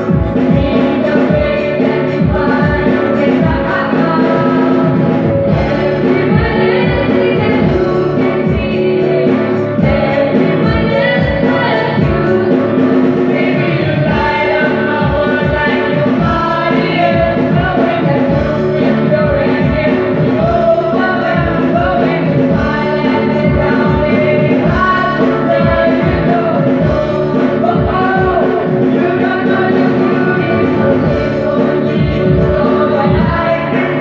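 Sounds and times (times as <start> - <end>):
group singing through pa: 0.0 - 34.0
keyboard: 0.0 - 34.0.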